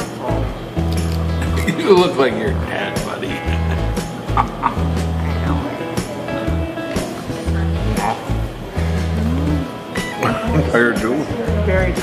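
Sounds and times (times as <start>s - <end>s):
music with repeating bass line: 3.2s - 12.0s.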